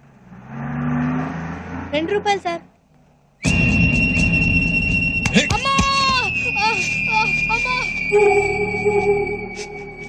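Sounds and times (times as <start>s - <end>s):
wailing voice: 5.4s - 10.0s
high ringing tone: 6.0s - 10.0s.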